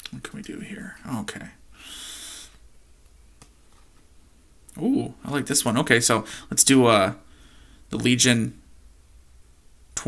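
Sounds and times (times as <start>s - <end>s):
breathy exhale: 1.8s - 2.6s, 7.3s - 7.8s.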